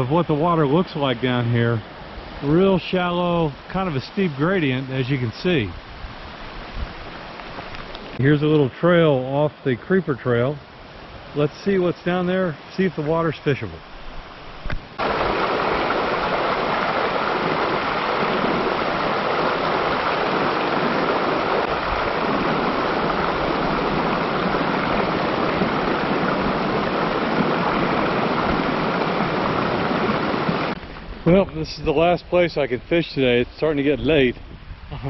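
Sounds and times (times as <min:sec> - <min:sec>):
creek rushing over stones: 0:00.0 - 0:34.3.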